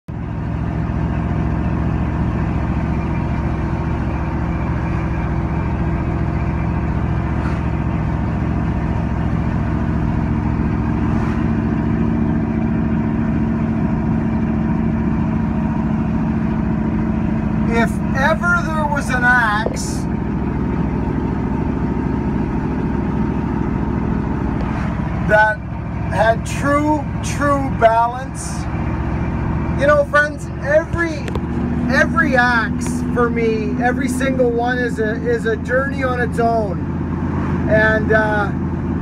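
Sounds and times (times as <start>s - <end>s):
vehicle engine hum: 0.0s - 39.0s
road noise inside vehicle: 0.1s - 39.0s.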